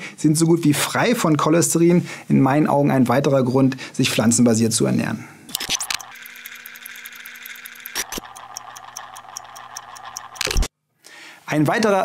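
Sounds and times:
fast ticking: 0:05.6 - 0:10.7.

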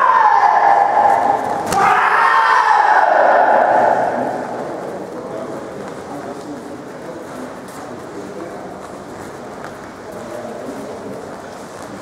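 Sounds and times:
loud shout falling in pitch: 0:00.0 - 0:04.6.

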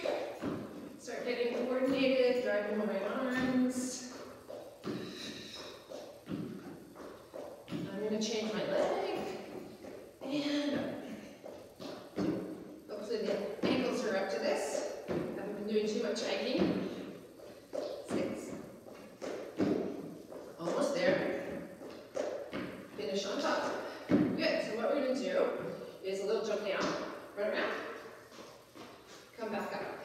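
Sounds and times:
sneakers thudding on step platform: 0:00.0 - 0:10.0, 0:10.6 - 0:24.8.

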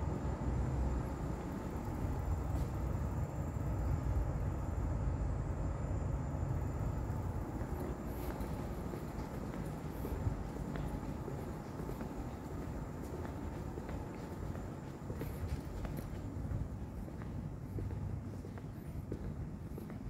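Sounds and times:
faint high whine: 0:00.0 - 0:20.0
low rumble of airport interior: 0:00.0 - 0:20.0.

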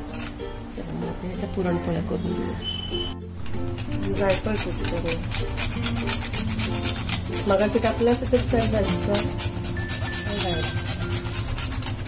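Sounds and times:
nutmeg rasping on a grater: 0:00.0 - 0:02.8, 0:03.4 - 0:12.0.

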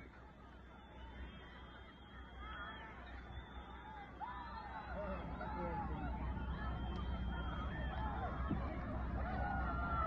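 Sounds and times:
distant crowd calling out: 0:00.3 - 0:10.0
crowd whistling: 0:00.4 - 0:10.0.

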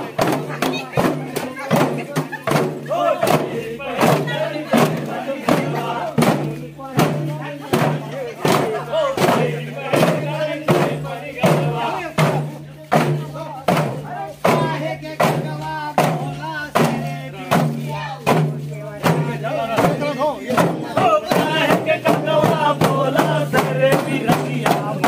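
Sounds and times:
barrel drum beaten by hand: 0:00.0 - 0:25.0
group singing and shouting: 0:00.0 - 0:25.0.

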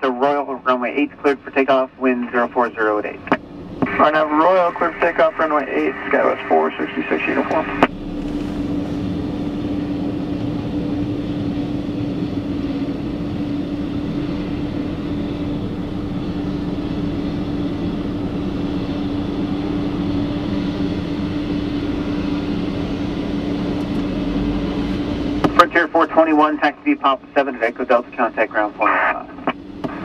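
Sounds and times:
steady engine drone: 0:00.0 - 0:30.0.

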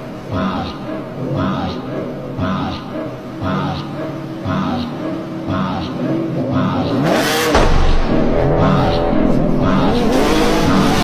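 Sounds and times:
sports car engine revving: 0:00.0 - 0:11.0
heavy bass music: 0:00.2 - 0:11.0.

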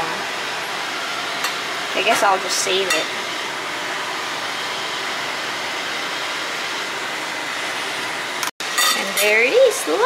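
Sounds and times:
exhaust fan running: 0:00.0 - 0:10.0.

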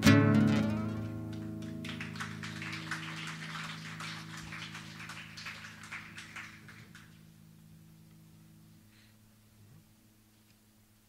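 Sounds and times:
acoustic guitar chord ringing: 0:00.0 - 0:02.1.

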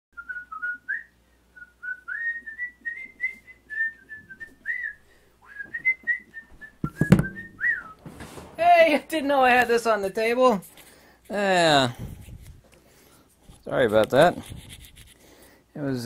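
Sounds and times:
man whistling a tune: 0:00.2 - 0:08.0
thump of sitting in chair: 0:06.8 - 0:08.6.

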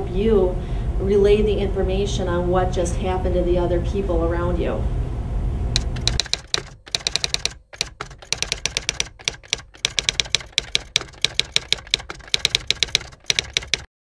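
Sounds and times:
fast typing on computer keyboard: 0:05.8 - 0:14.0.

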